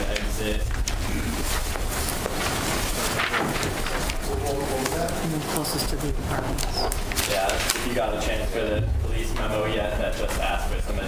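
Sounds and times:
meeting room background noise: 0.0 - 11.0.

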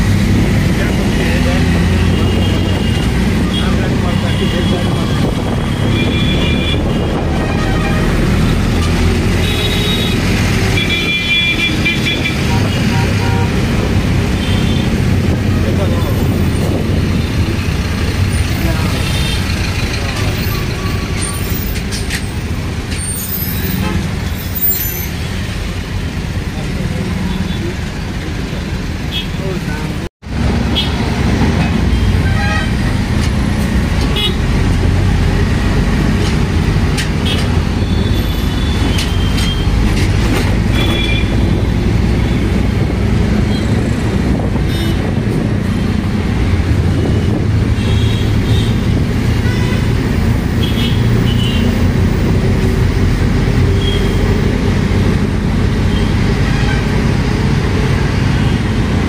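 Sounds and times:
auto-rickshaw engine running: 0.0 - 24.5
road noise: 0.0 - 59.0
vehicle horns: 1.9 - 15.0, 23.5 - 25.2, 29.1 - 29.4, 30.6 - 33.1, 34.0 - 34.6, 37.1 - 42.7, 43.4 - 45.4, 46.9 - 52.1, 53.7 - 54.4, 55.9 - 57.2.

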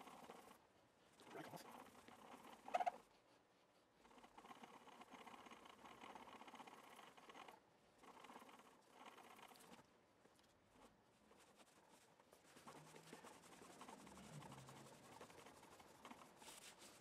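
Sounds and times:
cloth rubbing on guitar frets: 11.2 - 17.0.

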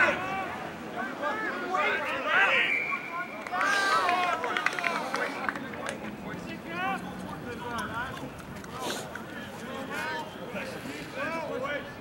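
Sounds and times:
players shouting calls: 0.0 - 5.5.

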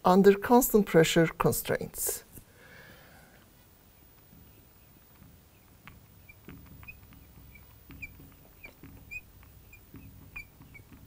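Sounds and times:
marker squeaking on glass: 4.0 - 11.0.

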